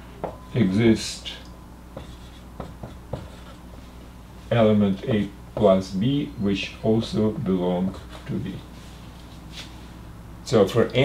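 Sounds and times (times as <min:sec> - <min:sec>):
marker pen writing on whiteboard: 0:02.0 - 0:03.6, 0:07.8 - 0:08.6.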